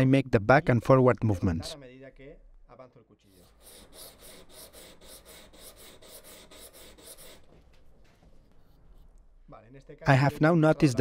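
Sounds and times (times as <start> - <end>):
knife blade scraping on sandpaper: 3.4 - 7.5.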